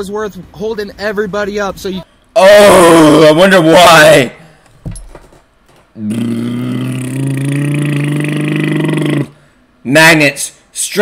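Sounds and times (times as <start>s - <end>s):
man making mocking noise: 6.0s - 9.4s.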